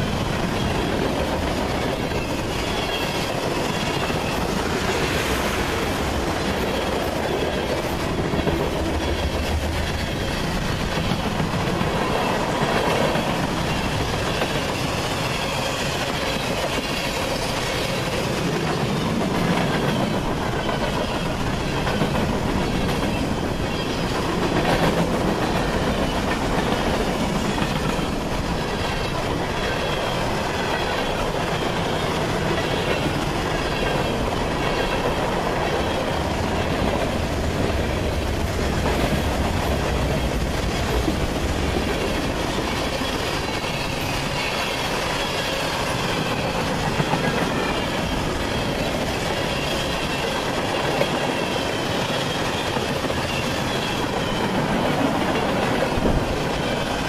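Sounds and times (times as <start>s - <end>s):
train wheels rolling over rails: 0.0s - 57.0s.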